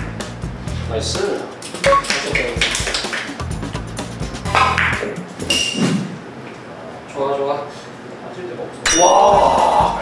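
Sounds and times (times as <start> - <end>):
people clapping: 1.8 - 3.5.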